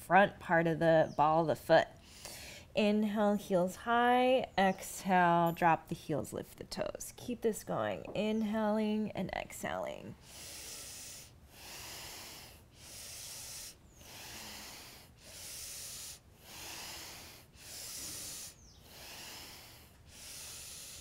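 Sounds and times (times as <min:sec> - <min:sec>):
woman breathing: 0:02.0 - 0:02.8, 0:10.1 - 0:21.0.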